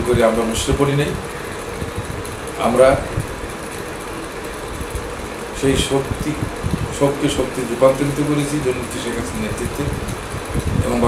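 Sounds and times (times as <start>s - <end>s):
machine humming and hissing: 0.0s - 11.0s.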